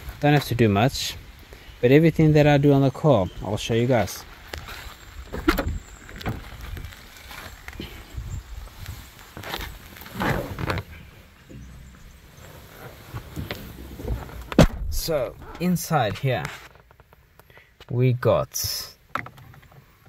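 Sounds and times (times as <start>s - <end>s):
clicks and rustles: 4.3s - 18.0s
person climbing into seat: 4.5s - 17.2s
car door opening: 5.3s - 6.6s, 9.4s - 15.7s.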